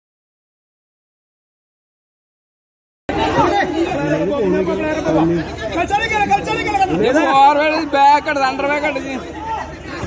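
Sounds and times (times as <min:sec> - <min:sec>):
voices talking and calling out: 0:03.1 - 0:10.0.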